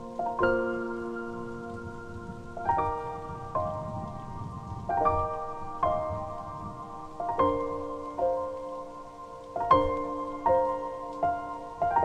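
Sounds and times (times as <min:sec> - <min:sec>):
falling rain: 0:00.0 - 0:12.0
slow solo piano waltz: 0:00.0 - 0:12.0.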